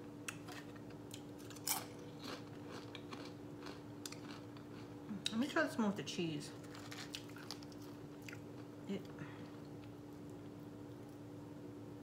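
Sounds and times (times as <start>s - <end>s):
steady low hum: 0.0s - 12.0s
clicks and crackles handling food: 0.2s - 5.5s, 6.5s - 11.3s.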